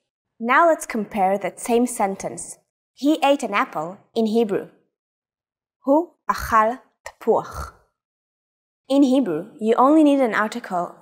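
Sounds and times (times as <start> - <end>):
woman speaking: 0.4 - 4.7, 5.9 - 7.8, 8.9 - 11.0.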